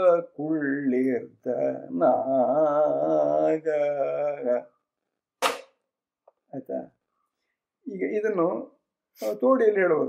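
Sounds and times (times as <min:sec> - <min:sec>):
man singing: 0:00.0 - 0:04.8
sharp hand slap: 0:05.4 - 0:05.8.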